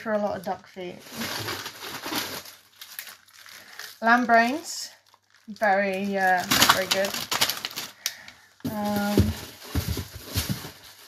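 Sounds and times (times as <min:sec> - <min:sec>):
plastic packaging crinkling: 0:00.9 - 0:11.0.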